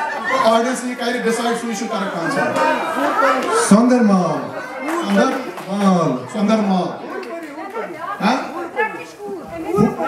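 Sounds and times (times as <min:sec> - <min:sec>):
people talking: 0:00.0 - 0:10.0.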